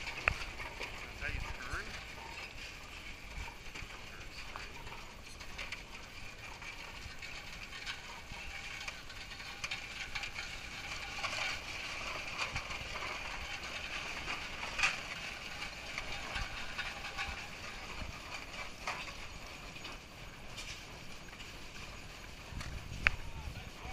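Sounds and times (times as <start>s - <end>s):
traction engine gears clattering: 0.0s - 23.9s.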